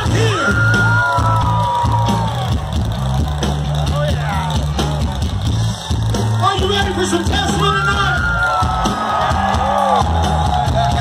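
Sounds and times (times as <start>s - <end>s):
live hard rock band: 0.0s - 11.0s.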